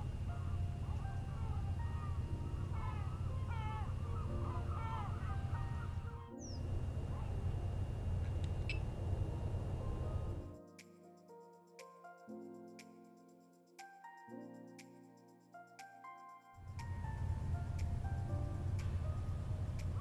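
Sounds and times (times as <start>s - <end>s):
bird calls: 0.0s - 9.0s.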